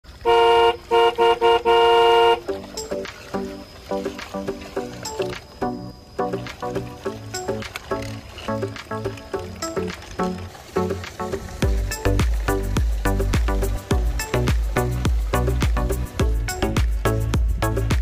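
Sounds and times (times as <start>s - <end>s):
horn tooting: 0.2s - 2.6s
lively music with steady beat: 2.4s - 10.2s, 10.9s - 18.0s.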